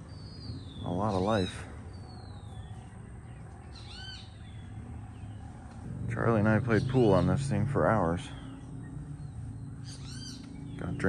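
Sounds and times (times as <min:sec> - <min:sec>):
steady low rumble: 0:00.0 - 0:11.0
harsh bird call: 0:03.7 - 0:04.7, 0:06.1 - 0:11.0.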